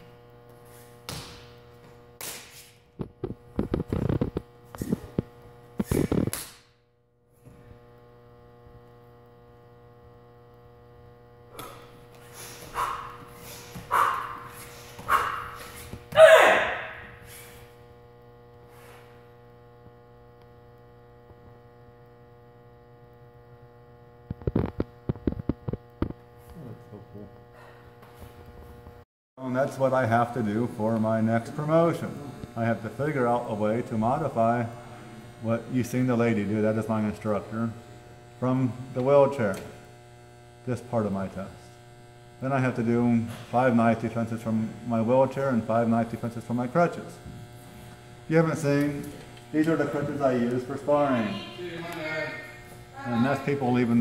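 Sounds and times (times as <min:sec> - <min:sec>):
electrical hum: 0:00.0 - 0:54.0
person shouting: 0:15.1 - 0:17.1.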